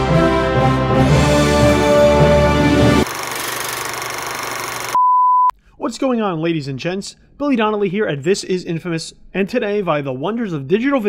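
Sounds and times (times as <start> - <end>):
steady beep: 4.9 - 5.5
man talking: 5.8 - 11.0.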